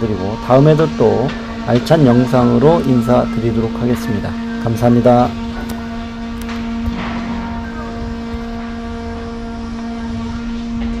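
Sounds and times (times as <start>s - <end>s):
machinery engine hum: 0.0s - 11.0s.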